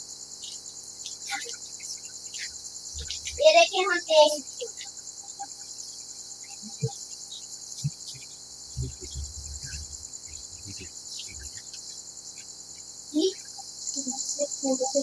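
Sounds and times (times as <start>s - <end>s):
high fast-pulsing chirr: 6.3s - 14.9s.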